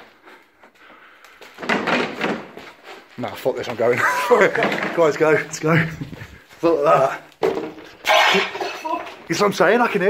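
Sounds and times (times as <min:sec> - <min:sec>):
faint rustling and handling: 0:02.4 - 0:07.4.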